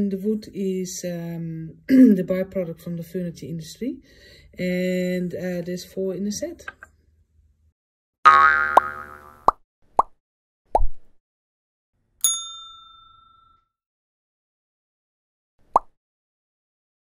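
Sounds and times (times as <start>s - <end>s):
clear ding: 12.2s - 13.8s.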